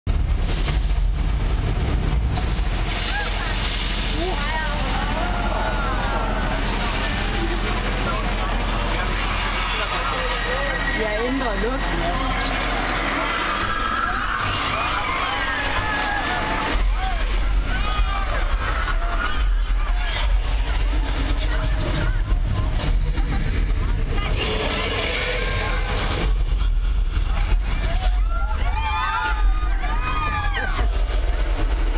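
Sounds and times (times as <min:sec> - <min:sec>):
tram rumbling: 0:00.1 - 0:31.9.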